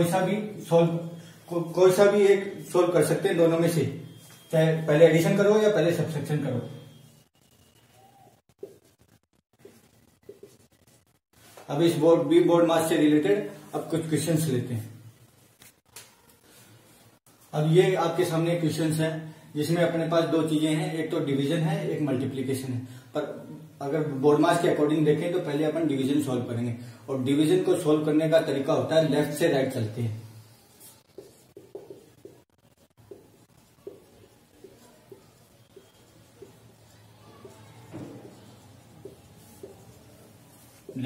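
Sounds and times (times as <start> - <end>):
marker pen writing on whiteboard: 8.6 - 11.1, 30.4 - 41.0.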